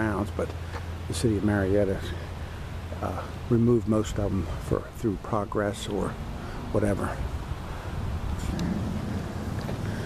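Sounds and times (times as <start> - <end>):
wind buffeting microphone: 6.2 - 10.0.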